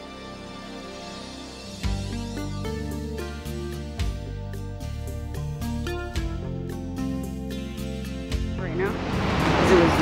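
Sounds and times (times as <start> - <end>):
background music: 0.0 - 10.0
rough surf: 8.6 - 10.0
wind rushing: 8.7 - 10.0.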